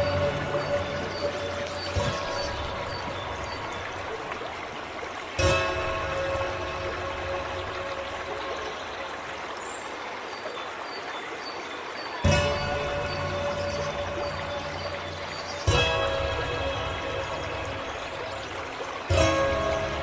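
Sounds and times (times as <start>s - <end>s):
soft piano music: 0.0s - 4.4s
water fountain trickling: 0.0s - 20.0s.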